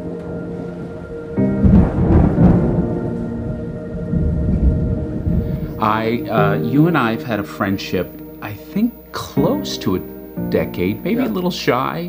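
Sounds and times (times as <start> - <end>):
theme music sustained tones: 0.0 - 12.0
loud low thunder rumble: 1.5 - 5.9.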